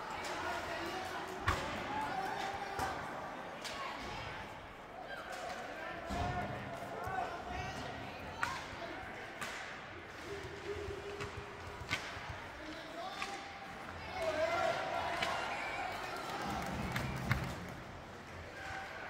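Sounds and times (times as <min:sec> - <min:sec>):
hockey sticks and puck clacking: 0:05.2 - 0:06.2, 0:08.3 - 0:19.0.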